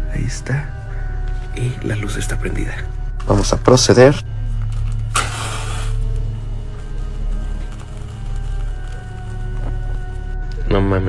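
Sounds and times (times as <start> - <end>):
low droning background music: 0.0 - 11.0
match striking hiss: 4.7 - 10.1.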